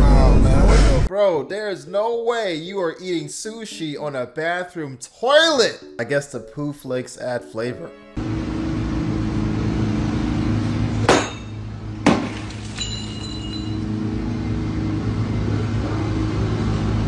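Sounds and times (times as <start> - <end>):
steady low hum: 8.2 - 17.0
short high ringing tone: 12.8 - 13.9.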